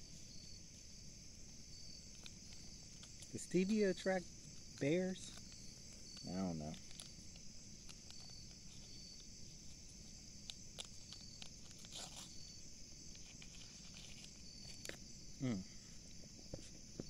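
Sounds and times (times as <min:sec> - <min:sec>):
faint insect chirp: 0:00.0 - 0:17.0
insect chorus: 0:00.0 - 0:17.0.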